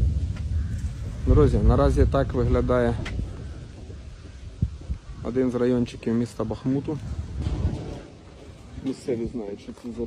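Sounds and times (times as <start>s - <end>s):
dull thump: 7.4s - 8.1s.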